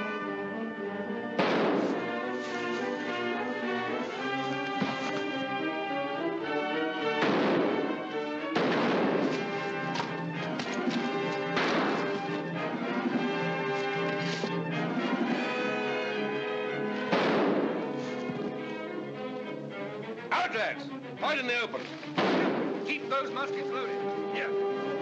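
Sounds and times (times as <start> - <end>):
orchestral film score: 0.0 - 25.0
musket shots: 1.4 - 2.4, 7.2 - 12.4, 17.0 - 18.0, 22.1 - 23.0.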